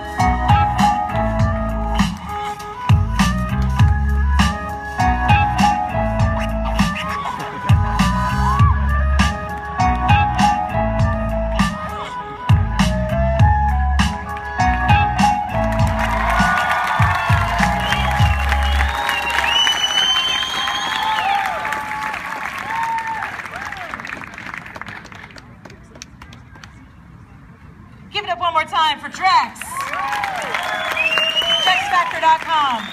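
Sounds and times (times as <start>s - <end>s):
music with heavy bass beat: 0.0s - 18.9s
audience applauding: 15.5s - 26.7s, 29.7s - 32.9s
audience cheering and whooping: 15.7s - 24.4s, 29.6s - 32.9s.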